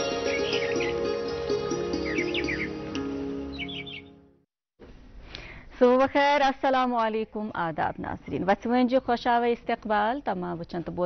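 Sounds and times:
bird chirping: 0:00.0 - 0:01.3, 0:01.9 - 0:04.2
instrumental theme music: 0:00.0 - 0:04.5.

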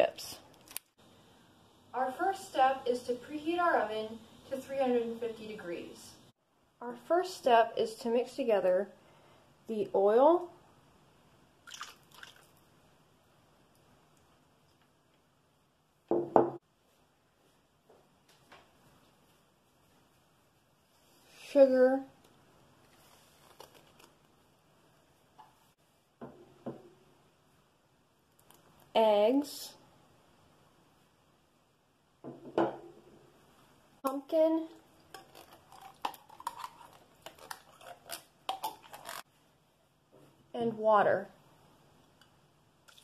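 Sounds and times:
oil splashing into metal bowl: 0:11.6 - 0:12.6.

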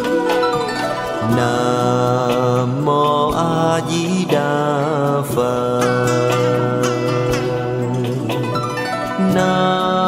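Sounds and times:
instrumental accompaniment: 0:00.0 - 0:10.0
person chanting: 0:01.2 - 0:10.0.

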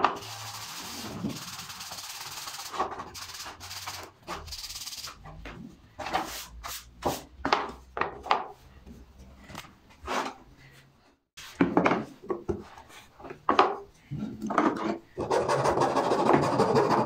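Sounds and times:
sandpaper rasping on wood: 0:00.2 - 0:05.2
wooden pieces knocking and scraping: 0:11.6 - 0:15.0.

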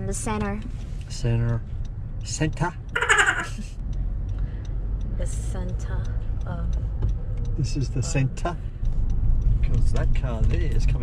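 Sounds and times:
car engine rumble: 0:00.0 - 0:11.0
road noise inside car: 0:00.0 - 0:11.0
person laughing: 0:03.0 - 0:03.8.

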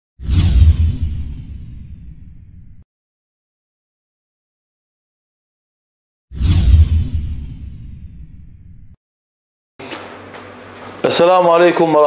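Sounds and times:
whoosh sound effect: 0:06.3 - 0:08.3
deep low rumble: 0:06.4 - 0:09.0.

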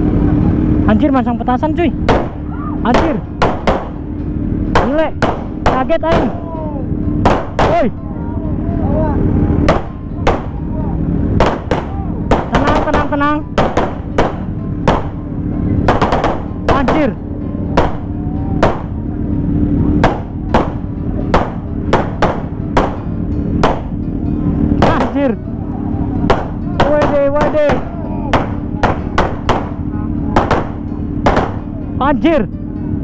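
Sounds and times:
low drone: 0:00.0 - 0:33.0
firecrackers banging: 0:02.0 - 0:08.0, 0:09.5 - 0:25.4, 0:26.2 - 0:31.8.

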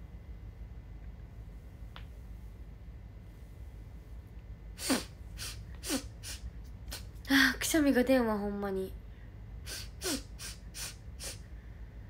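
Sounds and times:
woman sneezing: 0:04.8 - 0:07.1, 0:09.7 - 0:11.4.

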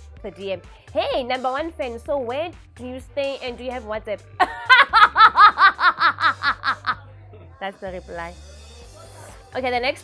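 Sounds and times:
woman laughing heartily: 0:04.4 - 0:07.0.

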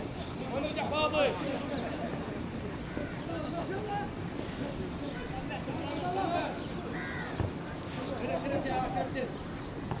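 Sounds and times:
distant voices shouting: 0:00.3 - 0:09.4.

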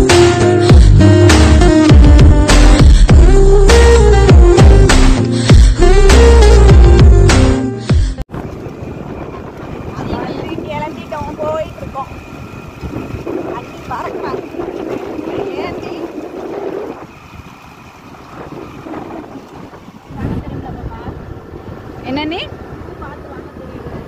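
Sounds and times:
scooter engine running: 0:08.3 - 0:24.0
wind buffeting microphone: 0:08.3 - 0:24.0.

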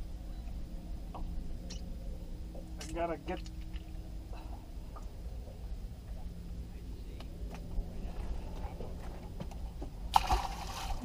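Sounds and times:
low steady rumble: 0:00.0 - 0:11.0
water sloshing against boat: 0:07.5 - 0:11.0.

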